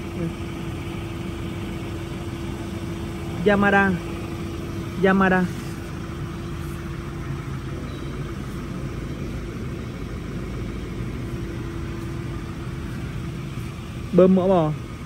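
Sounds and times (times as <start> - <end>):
faint held tone: 7.7 - 13.1.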